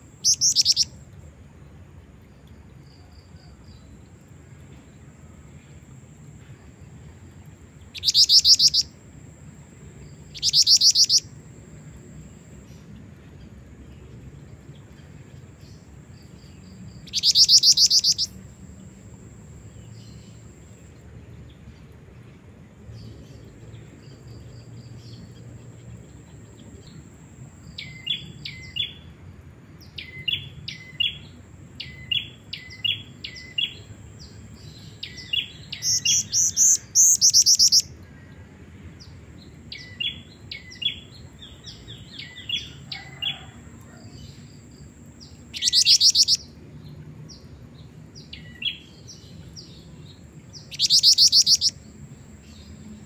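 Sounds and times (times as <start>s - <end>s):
bird chirping: 0.0s - 1.0s, 7.8s - 9.0s, 9.9s - 21.9s, 22.9s - 29.1s, 29.8s - 38.0s, 39.0s - 53.0s
bird fast trill: 0.2s - 0.9s, 8.0s - 8.9s, 10.3s - 11.3s, 17.1s - 18.4s, 35.8s - 37.8s, 45.6s - 46.4s, 50.7s - 51.8s.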